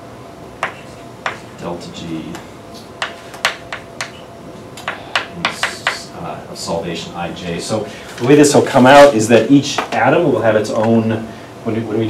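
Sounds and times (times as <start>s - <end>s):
chalk tapping on blackboard: 0.6s - 1.5s, 3.0s - 4.2s, 4.8s - 6.1s.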